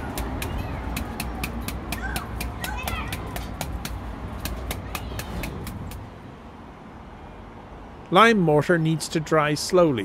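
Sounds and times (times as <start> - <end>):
sharp taps: 0.1 - 6.0.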